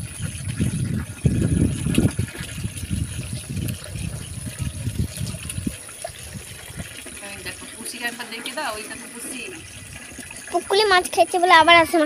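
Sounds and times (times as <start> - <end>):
water running from a tap: 0.0 - 12.0
water splashing in a bowl: 0.0 - 12.0.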